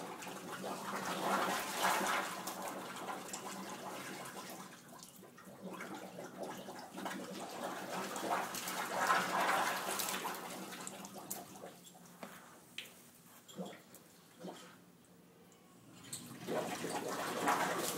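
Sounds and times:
water gurgling and gushing from drain: 0.0 - 11.8, 13.5 - 14.8, 15.9 - 17.9
water spilling onto floor: 7.9 - 11.7, 16.1 - 17.9.

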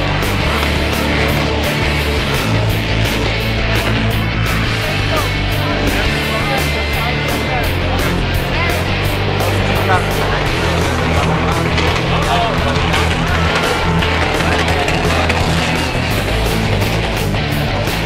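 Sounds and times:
fast steady drumbeat: 0.0 - 18.0
hard rock music: 0.0 - 18.0
heavy bass line: 0.0 - 18.0.

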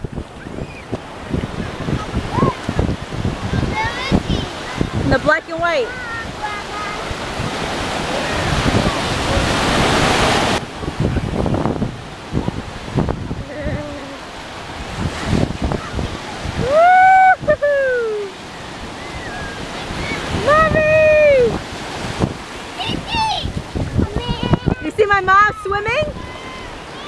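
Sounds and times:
ocean surf washing: 0.0 - 27.0
wind on microphone: 0.0 - 27.0
person shouting long call: 16.6 - 18.3.

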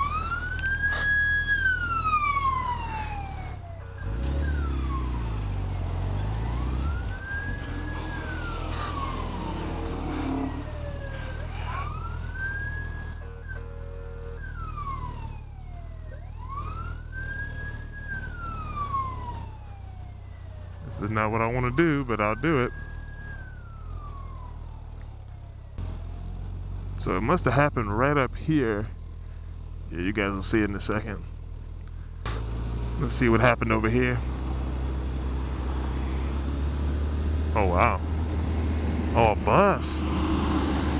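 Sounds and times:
emergency siren wailing: 0.0 - 27.4, 32.6 - 40.9.

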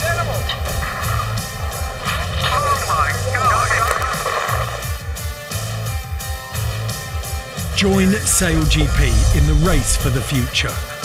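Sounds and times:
pulsing bass beat: 7.9 - 10.6.

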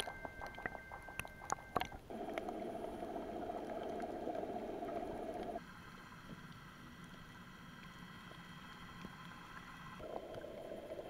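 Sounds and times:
underwater hush: 0.0 - 5.6
faint steady tones: 0.0 - 11.0
muffled water noise: 0.0 - 11.0.

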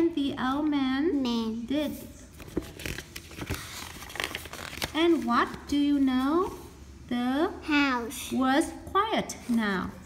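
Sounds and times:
paper page turning: 2.3 - 5.3.

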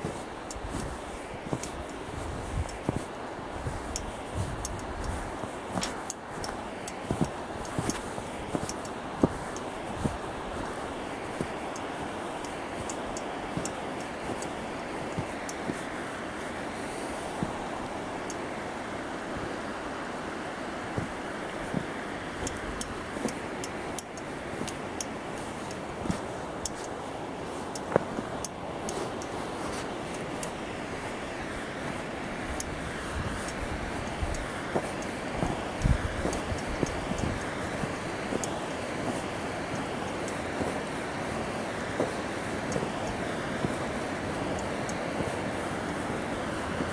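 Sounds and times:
wind on microphone: 0.0 - 18.6, 20.8 - 46.9
footsteps in snow: 0.0 - 46.9
river rushing over rocks: 0.0 - 46.9.

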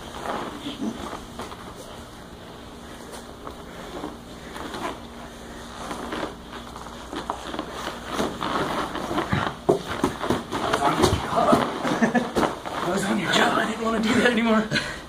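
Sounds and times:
cloth rustling and scuffing: 0.0 - 13.7
bodies knocking on mat: 8.1 - 12.8.

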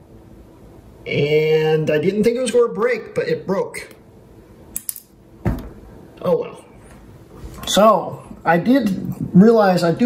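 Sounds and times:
thump on wooden tabletop: 5.4 - 5.8.

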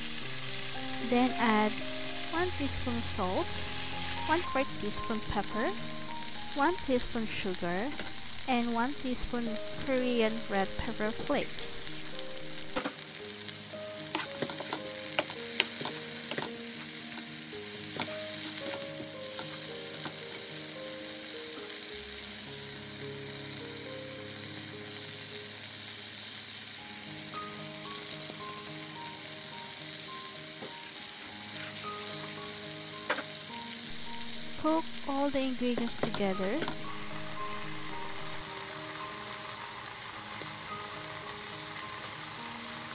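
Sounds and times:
food sizzling in a frying pan: 0.0 - 42.9.

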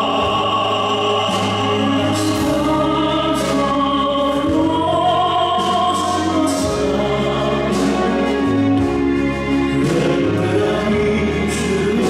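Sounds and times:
operatic singing with vibrato: 0.0 - 12.0
small orchestra with violins: 0.0 - 12.0.

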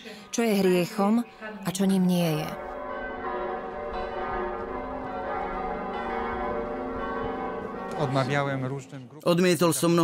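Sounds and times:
church bells ringing: 0.2 - 10.0.

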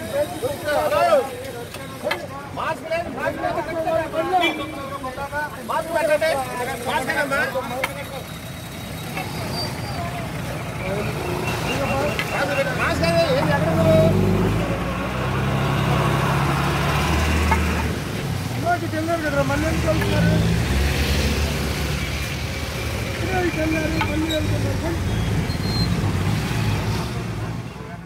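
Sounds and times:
motorbike and scooter engines: 0.0 - 28.0.

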